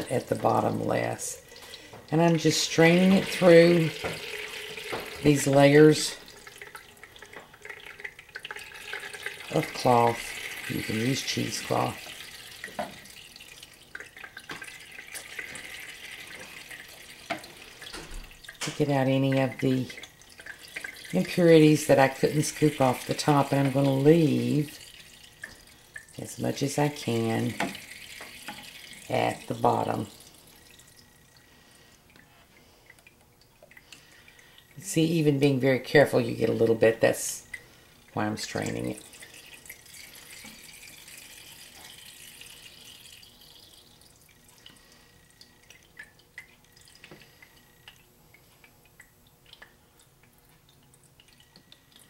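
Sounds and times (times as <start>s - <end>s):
liquid trickling and dripping: 0.0s - 52.0s.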